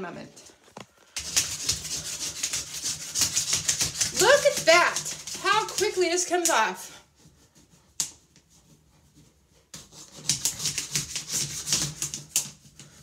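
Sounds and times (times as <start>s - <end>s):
plastic scraper on ceramic tiles: 0.7s - 6.6s, 9.8s - 13.0s.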